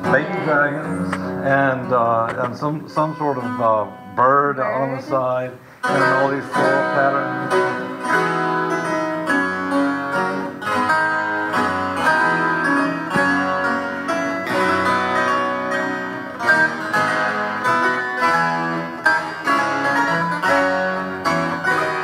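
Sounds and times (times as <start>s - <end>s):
harpsichord playing: 5.9s - 22.0s.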